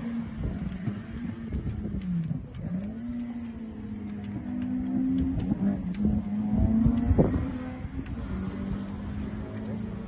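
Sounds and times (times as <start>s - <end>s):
rally car engine running hard: 0.0s - 10.0s.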